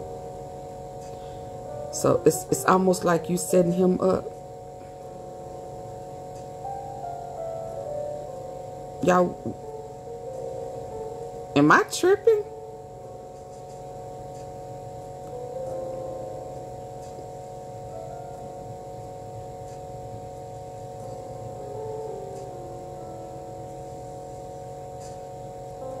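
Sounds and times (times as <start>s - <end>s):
low steady hum: 0.0s - 26.0s
soft music of long held notes: 0.0s - 26.0s.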